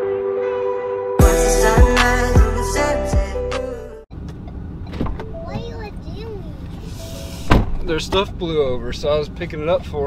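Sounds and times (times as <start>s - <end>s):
car door shutting: 4.3s - 5.8s, 7.0s - 8.3s.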